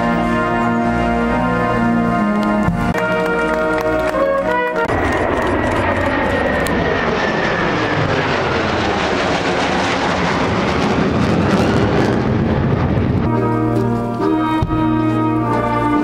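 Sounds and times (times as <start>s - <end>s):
jet aircraft flying over: 0.0s - 16.0s.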